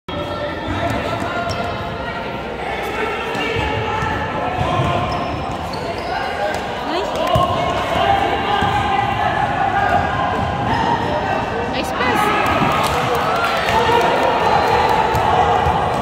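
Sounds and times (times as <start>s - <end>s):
sneaker squeaks: 4.6s - 7.5s.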